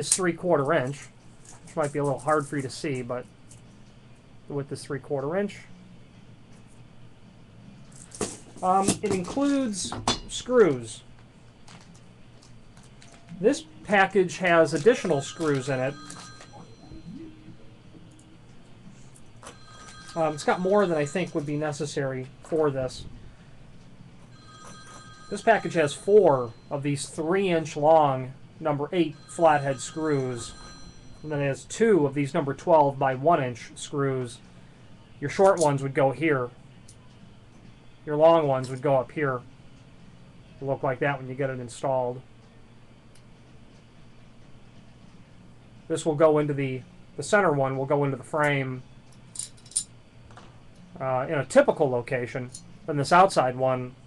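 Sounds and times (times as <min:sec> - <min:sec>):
faint multi-pitch ringing tone: 0:13.1 - 0:23.6, 0:24.2 - 0:38.4.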